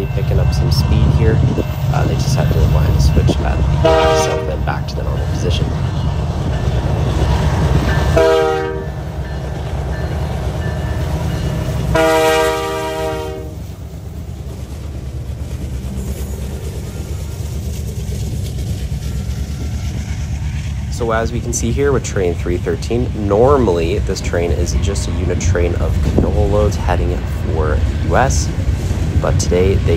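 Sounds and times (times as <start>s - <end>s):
freight train rumbling: 0.0s - 29.9s
train air horn blasts: 3.8s - 4.6s, 8.1s - 9.0s, 11.9s - 13.6s.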